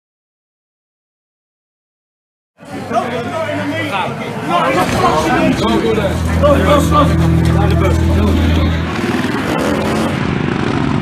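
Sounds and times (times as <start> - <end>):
voices: 2.7 - 10.2.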